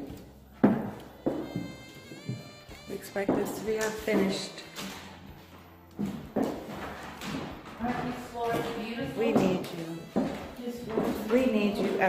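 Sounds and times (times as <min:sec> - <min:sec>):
footsteps on hardwood floor: 0:00.0 - 0:12.0.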